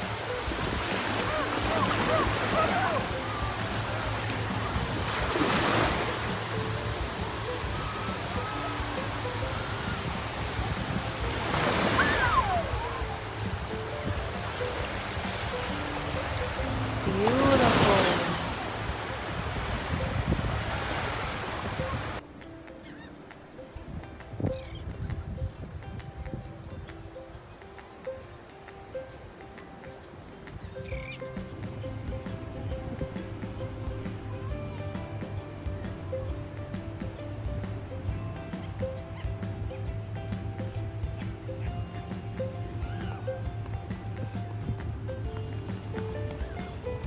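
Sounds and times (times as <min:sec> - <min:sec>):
small waves breaking on shore: 0:00.0 - 0:47.0
soft music of held notes: 0:00.0 - 0:47.0.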